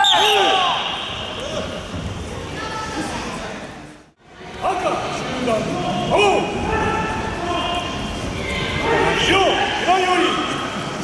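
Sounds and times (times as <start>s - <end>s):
sharp shouts: 0.0s - 1.6s.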